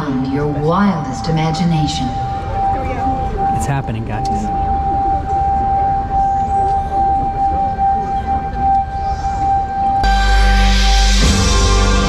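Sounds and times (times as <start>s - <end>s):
audience murmuring: 0.0s - 10.1s
steady high tone over loudspeakers: 0.0s - 12.0s.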